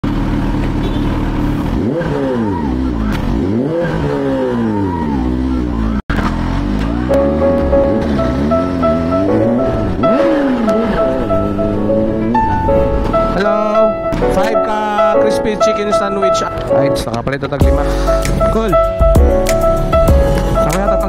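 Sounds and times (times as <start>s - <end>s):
motorcycle engine revving: 0.0s - 13.4s
music with sustained notes: 6.9s - 21.0s.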